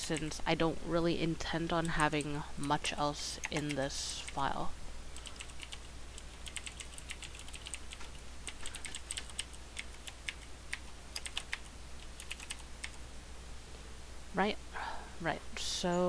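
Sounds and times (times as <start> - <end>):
typing on computer keyboard: 3.4 - 3.8, 5.2 - 13.0.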